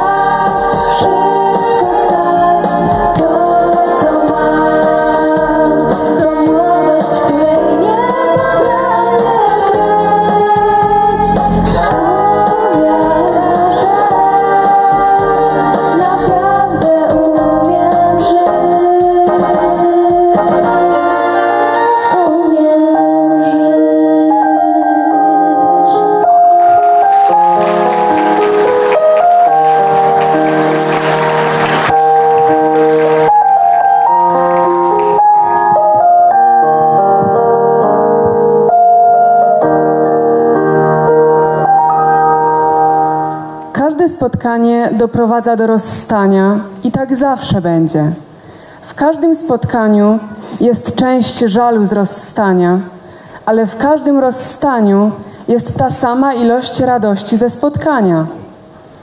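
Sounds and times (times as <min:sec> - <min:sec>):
small band playing: 0:00.0 - 0:22.0, 0:26.3 - 0:36.4
women singing: 0:00.0 - 0:26.6
held keyboard chords: 0:00.0 - 0:43.8.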